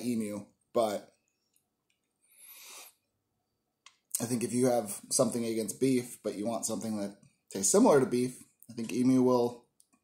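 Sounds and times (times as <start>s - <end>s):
faint breath: 2.2s - 3.1s
person speaking: 3.9s - 9.7s.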